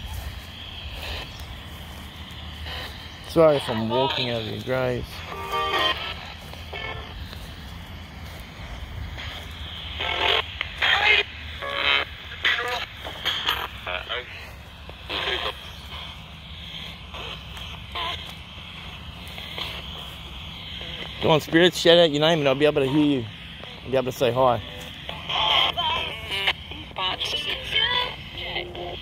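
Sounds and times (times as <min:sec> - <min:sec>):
chopped radio voices: 0:00.0 - 0:29.0
radio static hiss and hum: 0:00.0 - 0:29.0.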